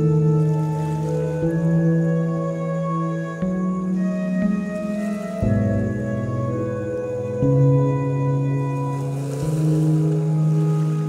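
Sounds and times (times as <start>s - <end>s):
ambient pad and string music: 0.0s - 11.0s
lake waves: 0.0s - 11.0s.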